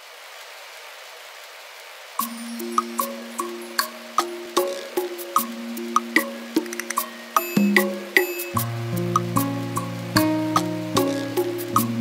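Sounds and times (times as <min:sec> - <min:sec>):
falling rain hiss: 0:00.0 - 0:12.0.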